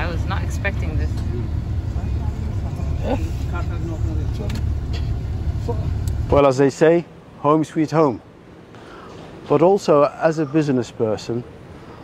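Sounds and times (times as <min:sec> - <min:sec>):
vehicle engine rumbling: 0:00.0 - 0:07.4.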